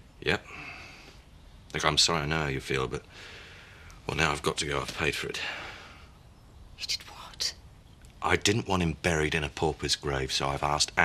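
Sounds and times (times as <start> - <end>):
breathy whispered sounds: 6.8 - 7.6.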